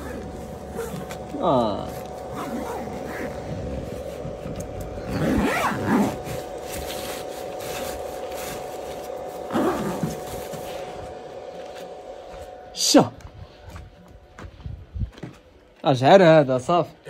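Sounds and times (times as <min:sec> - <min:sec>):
power inverter whine: 0:00.0 - 0:17.0.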